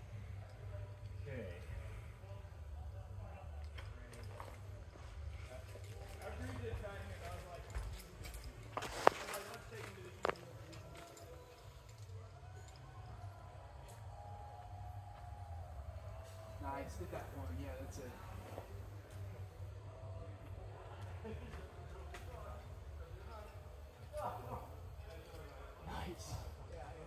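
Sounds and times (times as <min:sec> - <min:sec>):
faint indistinct voices: 0:00.0 - 0:27.0.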